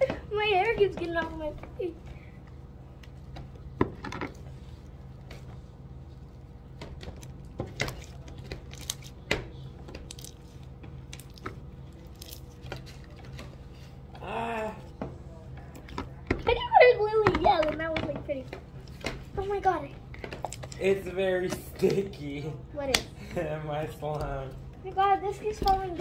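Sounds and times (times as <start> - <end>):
faint low hum: 0.0 - 26.0.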